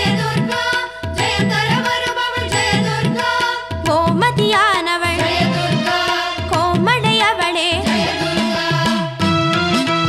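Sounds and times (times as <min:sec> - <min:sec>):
devotional song with percussion: 0:00.0 - 0:10.0.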